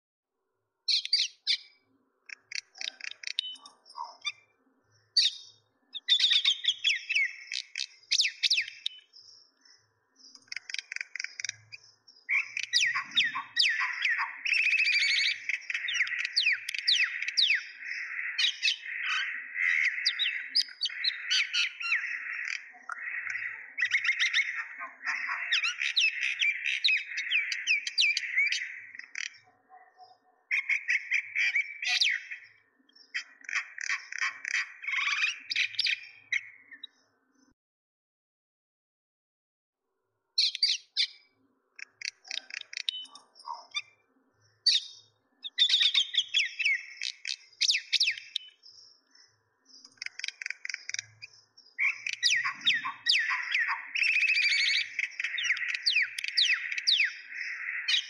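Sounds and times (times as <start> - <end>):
small birds chirping: 0.8 - 37.6, 40.3 - 58.0.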